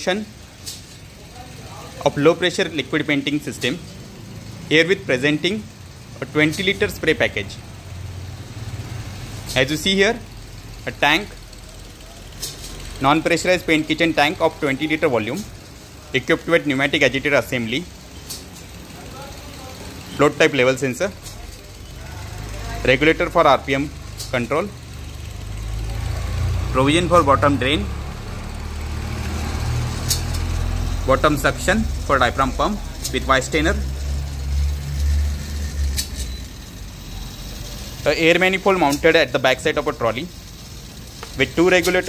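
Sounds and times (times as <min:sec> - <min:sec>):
low mechanical rumble: 0:00.0 - 0:42.0.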